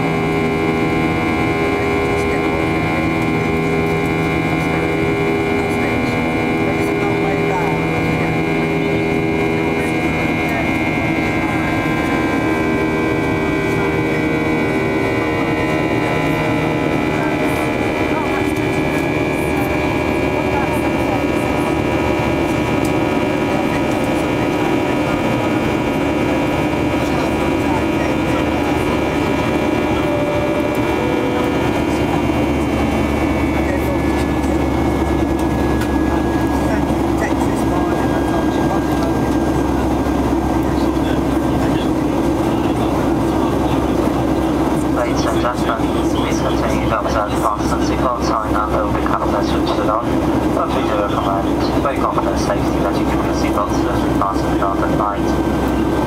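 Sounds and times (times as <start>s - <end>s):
engine rumble: 0.0s - 56.0s
high engine whine: 0.0s - 56.0s.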